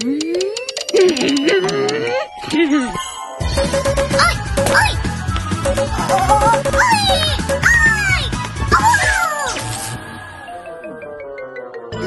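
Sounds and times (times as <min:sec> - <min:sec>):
cartoon music: 0:00.0 - 0:09.6.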